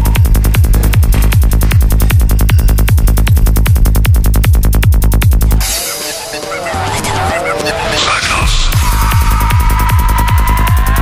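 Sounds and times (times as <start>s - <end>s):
swooping synth effects: 0.0s - 11.0s.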